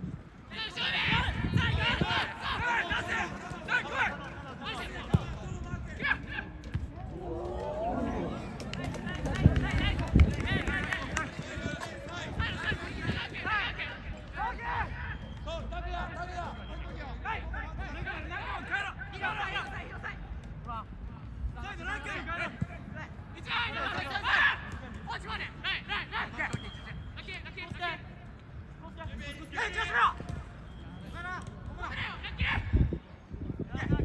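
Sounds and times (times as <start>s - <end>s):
players shouting calls: 0.5s - 20.9s, 21.6s - 28.3s, 28.9s - 33.0s.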